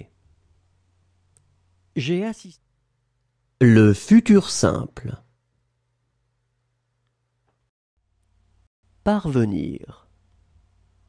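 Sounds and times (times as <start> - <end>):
faint low hum: 0.0 - 11.0
spoken words: 3.6 - 5.3.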